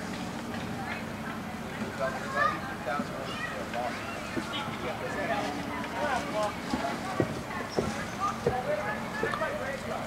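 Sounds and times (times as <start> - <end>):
faint voices: 0.0 - 10.0
sharp knocks in walking rhythm: 6.7 - 9.5.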